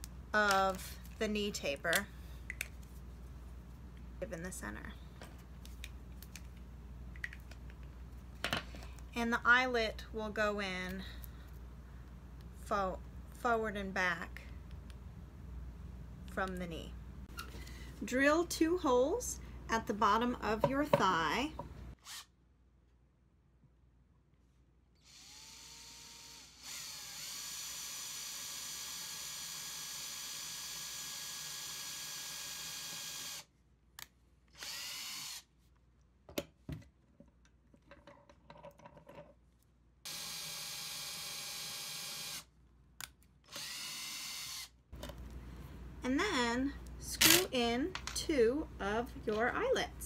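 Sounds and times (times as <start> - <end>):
cordless drill drilling into wood: 25.0 - 33.5, 34.6 - 35.5, 40.1 - 42.5, 43.5 - 44.7
drill clicks: 43.5 - 44.7.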